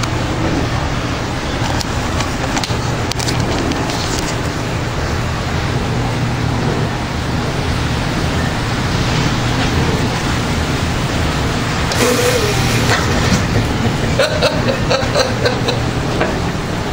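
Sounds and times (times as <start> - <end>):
low hum: 11.9 - 15.0.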